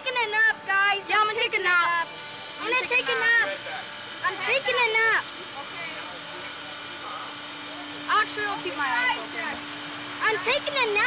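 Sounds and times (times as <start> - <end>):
faint voices: 0.0 - 11.0
ride machinery humming: 0.0 - 11.0.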